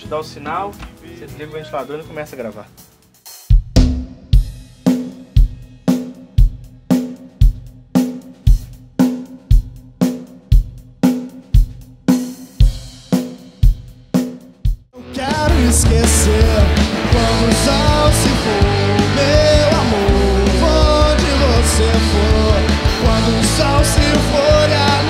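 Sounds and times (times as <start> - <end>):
rock music with singing: 15.0 - 25.0.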